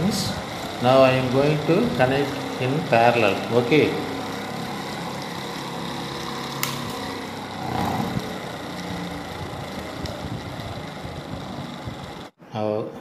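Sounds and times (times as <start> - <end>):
electric motor humming: 0.0 - 12.4.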